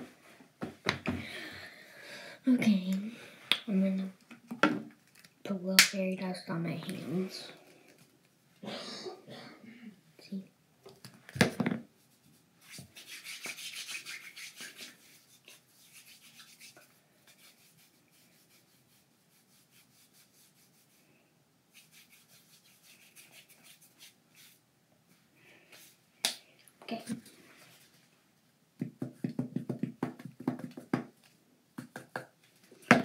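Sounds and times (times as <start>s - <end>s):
hands rubbing together: 12.0s - 21.0s, 21.7s - 24.6s.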